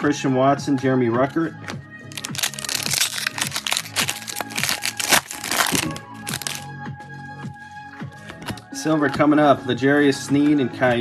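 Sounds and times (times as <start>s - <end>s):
foil pack crinkling and tearing: 2.1s - 6.6s.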